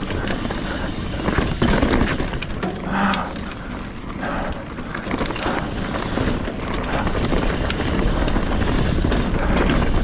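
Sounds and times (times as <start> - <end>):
bike clicks and rattles: 0.0 - 10.0
tyres rumbling on dirt: 0.0 - 10.0.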